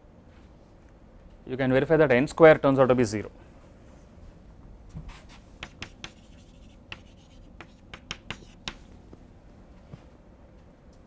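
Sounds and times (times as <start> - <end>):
chalk tapping and scratching: 5.1 - 9.0.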